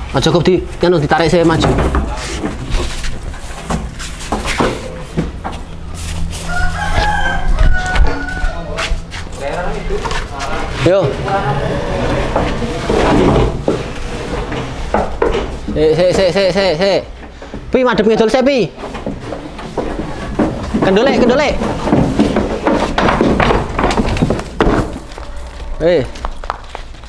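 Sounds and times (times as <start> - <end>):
bull hooves knocking and thumping: 0.0 - 27.0
rooster crowing: 6.3 - 9.1.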